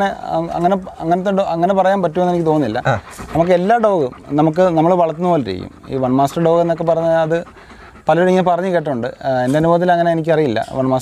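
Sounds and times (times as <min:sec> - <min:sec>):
man talking: 0:00.0 - 0:07.5
dog panting: 0:00.0 - 0:11.0.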